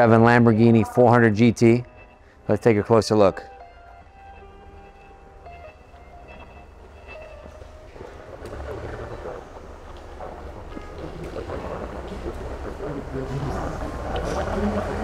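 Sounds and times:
soft background music: 0.0s - 15.0s
footsteps on concrete floor: 4.3s - 12.6s
warehouse room noise: 4.3s - 15.0s.

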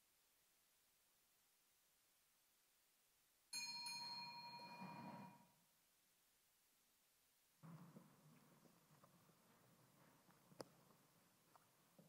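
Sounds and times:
small bell ringing: 3.5s - 5.5s.

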